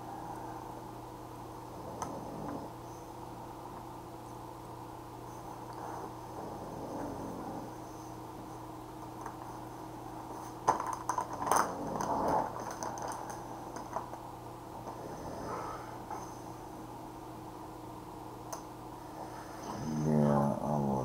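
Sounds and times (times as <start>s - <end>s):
low electrical hum: 0.0s - 21.0s.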